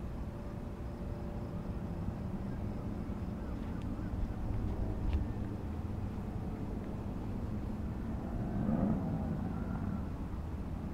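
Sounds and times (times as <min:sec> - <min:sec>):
distant engine hum: 0:00.0 - 0:10.9
low outdoor rumble: 0:00.0 - 0:10.9.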